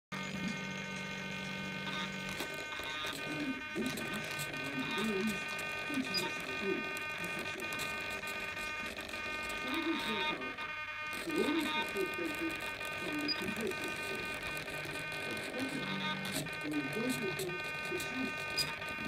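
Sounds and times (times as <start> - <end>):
servo buzzing whine: 0.1 - 19.0.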